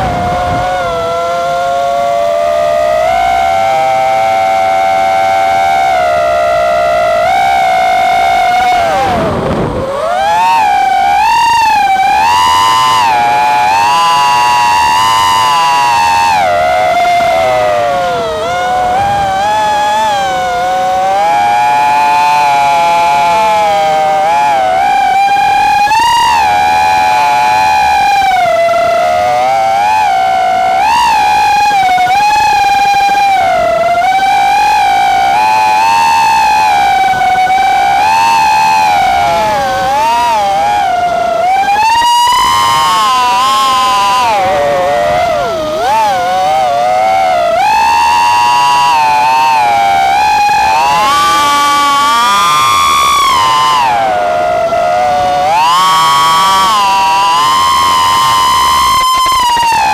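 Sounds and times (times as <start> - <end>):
drone motors whining: 0.0 - 59.9.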